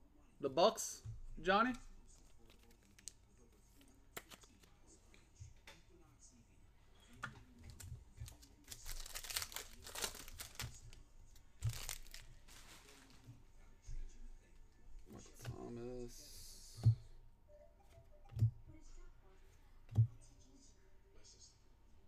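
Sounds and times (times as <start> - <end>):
card pack wrapper tearing and crinkling: 8.2 - 10.8, 11.6 - 12.7.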